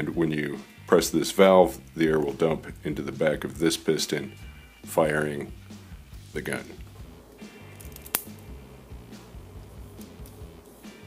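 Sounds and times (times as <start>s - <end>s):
quiet background music: 0.0s - 11.0s
pneumatic pistol firing snap: 7.8s - 8.4s.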